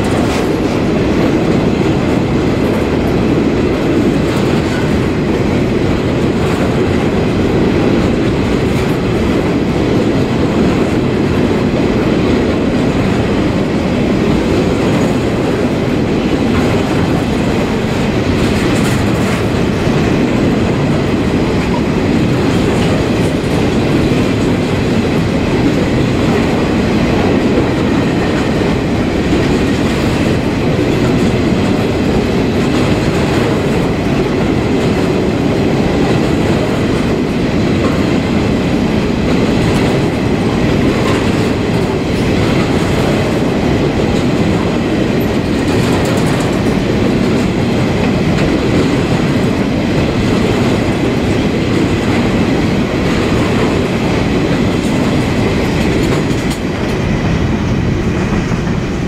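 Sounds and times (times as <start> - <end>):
freight train rolling past: 0.0 - 59.0
steel wheels on rails: 0.0 - 59.0.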